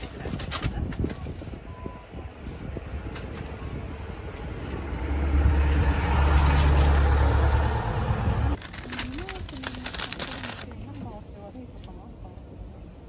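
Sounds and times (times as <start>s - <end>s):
vehicle engine passing by: 2.7s - 8.6s.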